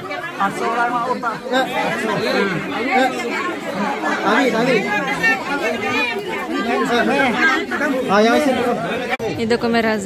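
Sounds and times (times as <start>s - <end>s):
overlapping conversation: 0.0s - 10.0s.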